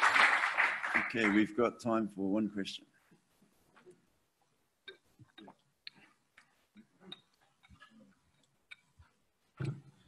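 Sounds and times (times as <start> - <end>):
faint irregular clicks and knocks: 3.1 - 10.0.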